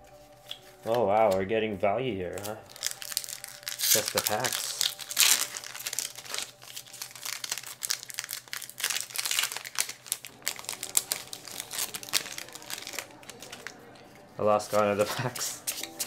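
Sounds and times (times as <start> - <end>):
foil wrapper crinkling and tearing: 2.3 - 16.0.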